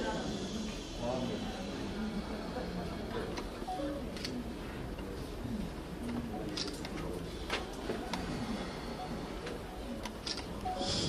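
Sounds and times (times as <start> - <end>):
murmur of voices in a hall: 0.0 - 11.0.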